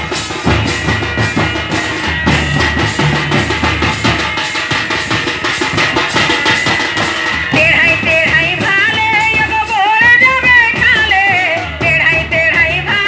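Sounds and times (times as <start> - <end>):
barrel drums played by hand: 0.0 - 13.0
high steady tone: 0.6 - 5.8
wavering melody line: 1.4 - 4.4.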